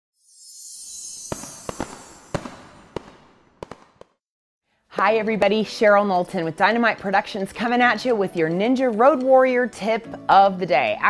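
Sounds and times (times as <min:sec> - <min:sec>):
fireworks fizzing hiss: 0:00.6 - 0:03.2
sharp firework cracks: 0:01.3 - 0:04.2.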